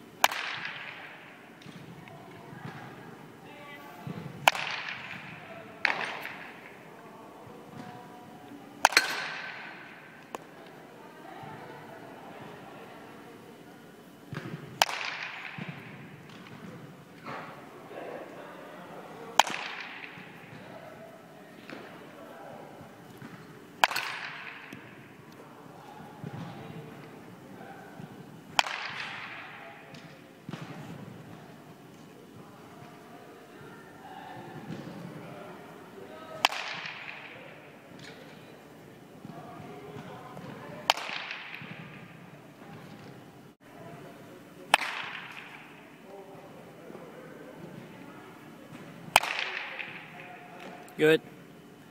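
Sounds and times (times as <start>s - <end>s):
baseball bat cracks with echo: 0.2s - 1.8s, 4.1s - 6.9s, 8.8s - 10.5s, 14.4s - 17.4s, 19.4s - 20.6s, 23.8s - 25.2s, 28.6s - 30.7s, 36.4s - 38.3s, 40.9s - 42.2s, 44.7s - 46.0s, 49.1s - 50.7s.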